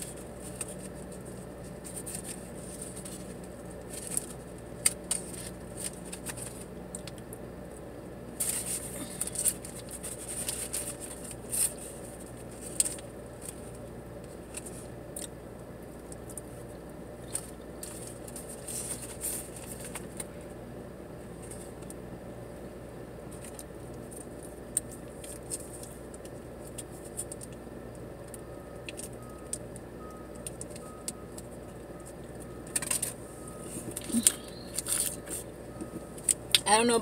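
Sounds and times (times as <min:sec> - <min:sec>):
steady low hum: 0:00.0 - 0:37.0
paper wrapper crinkling: 0:08.4 - 0:13.6.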